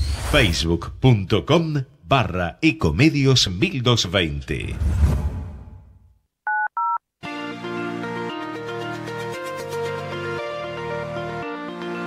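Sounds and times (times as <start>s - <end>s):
telephone keypad beeps: 6.5s - 7.0s.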